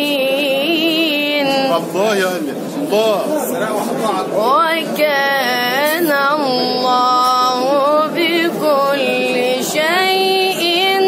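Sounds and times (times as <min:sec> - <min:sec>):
boy reciting melodically: 0:00.0 - 0:02.2, 0:04.3 - 0:11.0.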